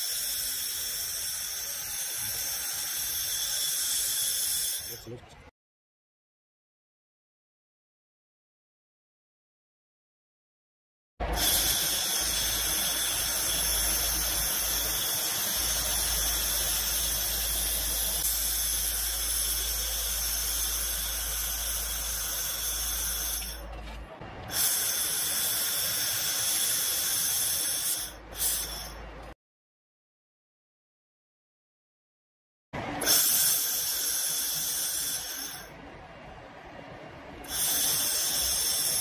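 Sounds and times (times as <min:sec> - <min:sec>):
laser welder hissing and whining: 0:00.0 - 0:05.2, 0:11.3 - 0:23.6, 0:24.5 - 0:29.0, 0:33.0 - 0:35.8, 0:37.4 - 0:39.0.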